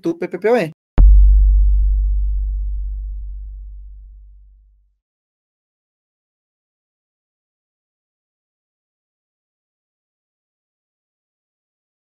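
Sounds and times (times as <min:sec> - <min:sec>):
deep bass hit ringing: 0:01.0 - 0:04.7.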